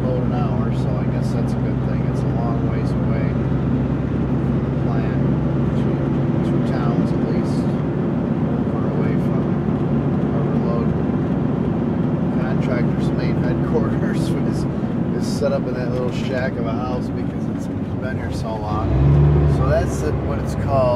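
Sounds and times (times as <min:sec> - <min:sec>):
truck diesel engine drone: 0:00.0 - 0:20.9.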